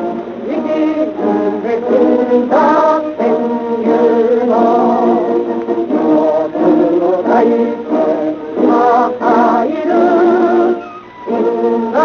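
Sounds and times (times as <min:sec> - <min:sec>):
choir singing on old radio: 0:00.0 - 0:12.0.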